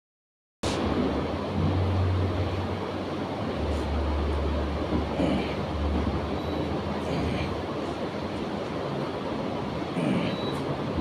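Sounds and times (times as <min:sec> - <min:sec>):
rumbling noise with low hum: 0:00.6 - 0:11.0.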